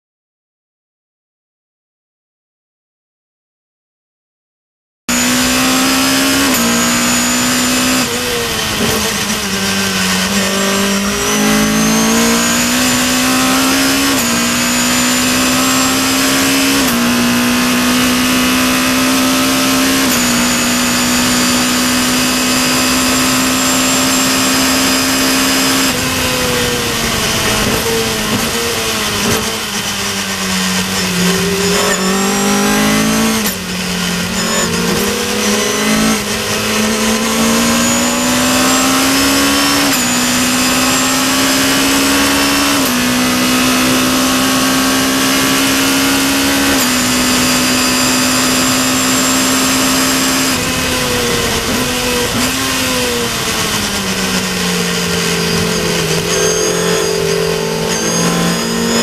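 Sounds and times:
race car engine: 5.1 - 59.0.

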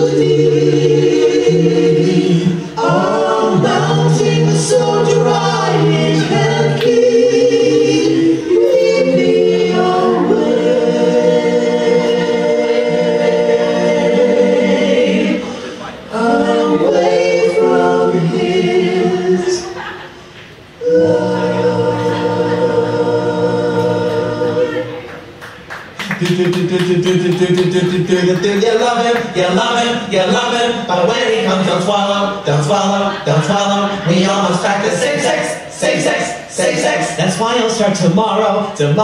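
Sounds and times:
choir singing long-held notes: 0.0 - 25.2.

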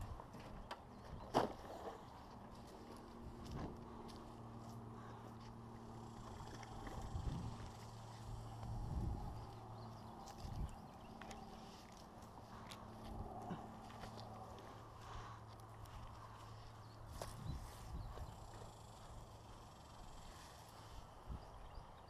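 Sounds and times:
footsteps on dirt and grass: 0.0 - 19.6.

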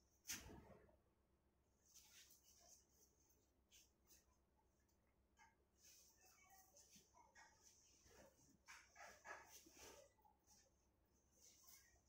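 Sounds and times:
faint dog barks: 5.4 - 10.6.

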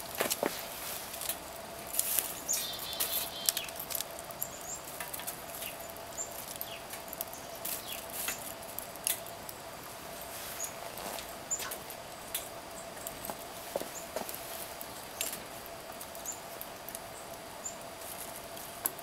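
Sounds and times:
twigs snapping and rustling: 0.0 - 9.6, 10.2 - 19.0
wood fire crackling: 0.0 - 19.0.

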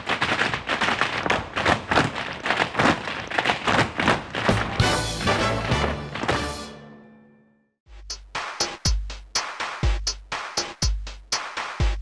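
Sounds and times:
tap shoes on stage floor: 0.0 - 6.7.

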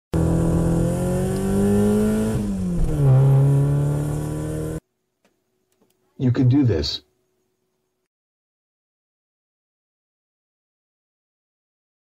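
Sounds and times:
car engine accelerating: 0.1 - 4.8.

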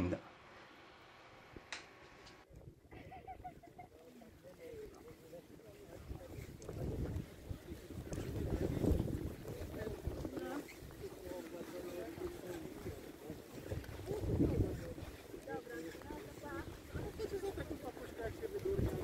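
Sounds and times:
people talking in background: 2.5 - 19.0
wind buffeting microphone: 5.8 - 11.4, 12.0 - 19.0.

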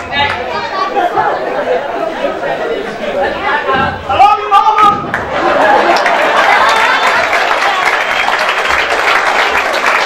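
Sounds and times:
indistinct chatter: 0.0 - 8.7.

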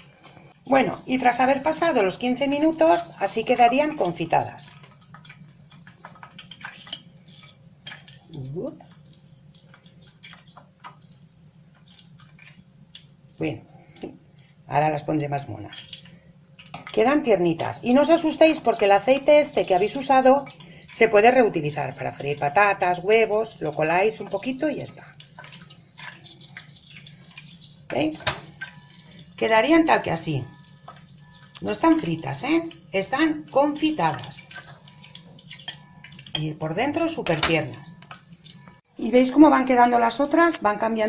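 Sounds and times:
oil dripping into pot: 3.9 - 14.7, 19.6 - 29.4, 30.0 - 33.0, 34.2 - 36.5.

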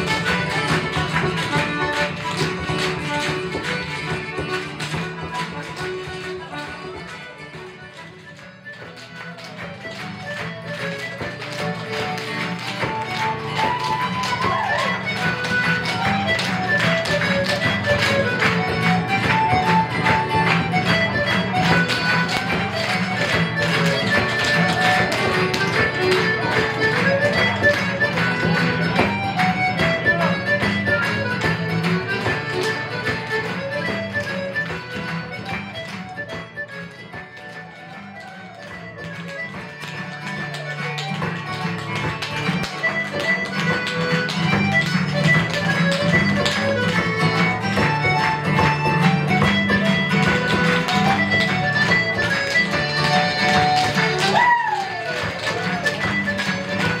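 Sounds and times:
traditional dance tune with guitars: 0.0 - 57.0.

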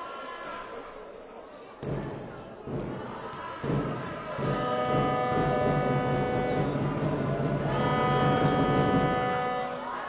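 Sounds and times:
basketball arena noise: 0.0 - 10.0
horn blasts: 4.4 - 10.0.

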